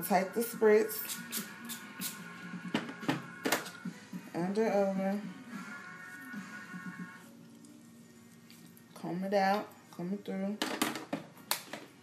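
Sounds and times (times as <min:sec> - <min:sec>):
spray bottle hisses: 0:00.9 - 0:02.3.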